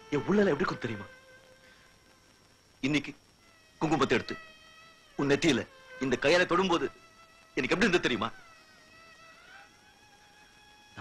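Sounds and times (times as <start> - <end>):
man speaking: 0.2 - 1.1, 3.8 - 4.4, 5.2 - 6.9, 7.6 - 8.4.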